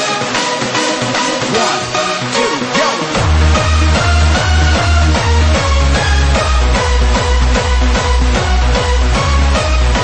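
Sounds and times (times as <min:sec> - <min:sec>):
dense synth chords: 0:00.0 - 0:10.0
booming kick drum: 0:03.2 - 0:09.3.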